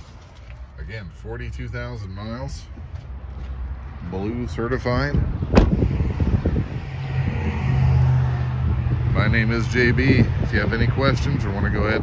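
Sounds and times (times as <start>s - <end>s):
truck door shutting: 5.5s - 5.8s.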